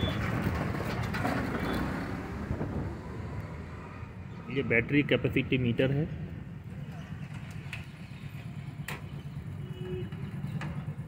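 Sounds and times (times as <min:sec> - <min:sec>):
vehicle noise rushing: 0:00.0 - 0:08.9.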